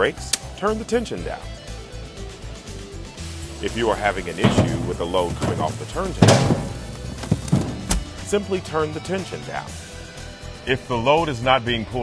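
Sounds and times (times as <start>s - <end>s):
boxes knocking: 3.9s - 8.2s
cardboard boxes thudding on floor: 4.4s - 8.1s.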